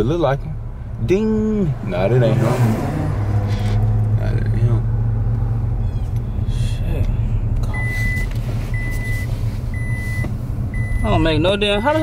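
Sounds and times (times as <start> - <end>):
car engine idling: 0.0 - 12.0
car warning chime beeps: 7.7 - 12.0.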